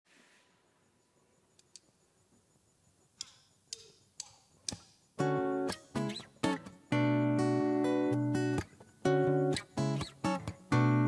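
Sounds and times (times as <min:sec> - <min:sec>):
sharp count-in clicks: 0:03.2 - 0:06.3
acoustic guitar: 0:05.2 - 0:11.0.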